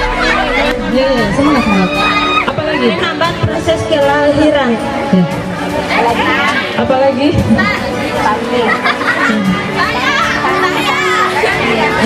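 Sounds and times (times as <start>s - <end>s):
background music: 0.0s - 12.0s
girls chattering: 0.0s - 12.0s.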